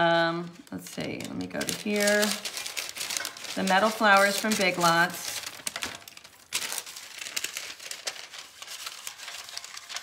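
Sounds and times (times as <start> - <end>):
paper rustling and crinkling: 0.1 - 10.0.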